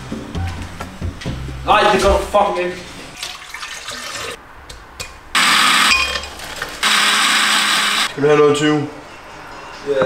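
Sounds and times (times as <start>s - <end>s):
countertop blender running: 5.4s - 6.0s, 6.8s - 8.1s.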